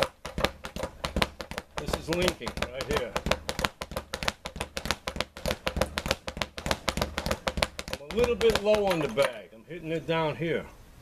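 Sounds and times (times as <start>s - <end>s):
speed bag punching knocks: 0.0s - 9.4s.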